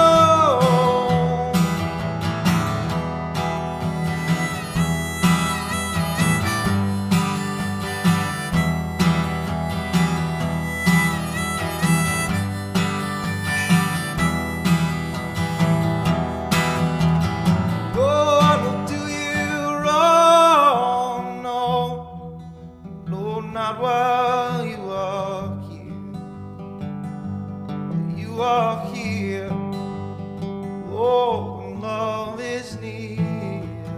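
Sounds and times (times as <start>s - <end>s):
harmonica melody: 0.0s - 21.2s
acoustic guitar strumming: 0.0s - 33.9s.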